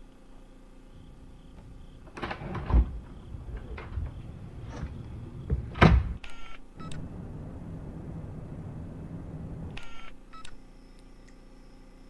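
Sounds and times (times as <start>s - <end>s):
faint high whine: 0.0s - 12.0s
low static rumble: 0.0s - 12.0s
heavy thud: 2.5s - 6.2s
electronic beeping: 9.8s - 10.6s.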